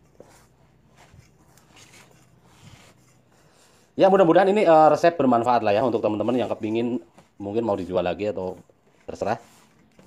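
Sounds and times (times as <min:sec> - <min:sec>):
hand kneading dough in a bowl: 0:00.0 - 0:10.0.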